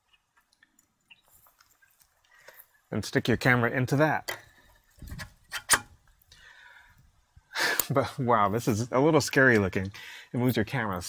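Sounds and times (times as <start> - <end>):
man speaking: 2.9 - 4.4, 7.9 - 11.0
man breathing in: 6.3 - 7.8, 10.0 - 10.3.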